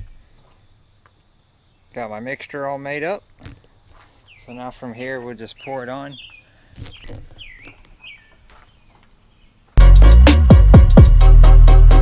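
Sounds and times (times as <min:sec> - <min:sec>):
bird chirping: 0:00.0 - 0:09.8
electronic music with heavy drum beat: 0:09.8 - 0:12.0.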